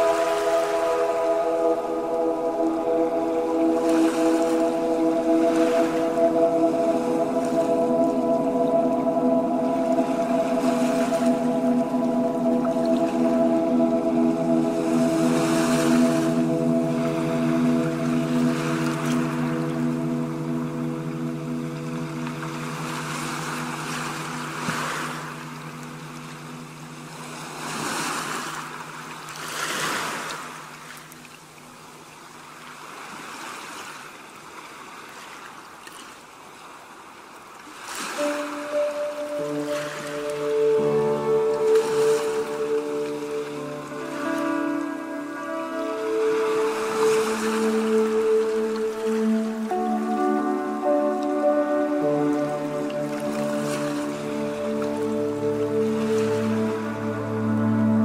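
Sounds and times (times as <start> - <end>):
ocean surf breaking on a beach: 0.0 - 31.1
soft instrumental music: 0.0 - 31.3, 37.9 - 58.0.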